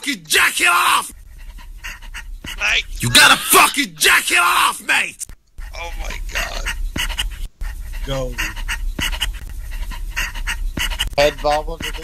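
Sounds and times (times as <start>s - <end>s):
man panting rapidly: 1.1s - 2.7s, 6.4s - 12.0s.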